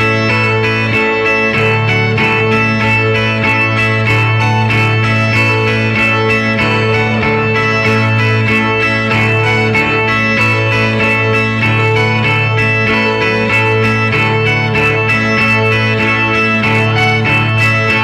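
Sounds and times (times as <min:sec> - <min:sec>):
plucked guitars picking: 0:00.0 - 0:18.0.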